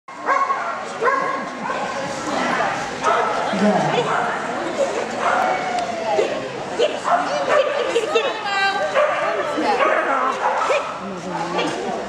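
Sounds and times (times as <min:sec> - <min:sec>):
dog barking: 0:00.2 - 0:01.9, 0:03.0 - 0:03.4, 0:06.8 - 0:07.9, 0:09.0 - 0:11.0.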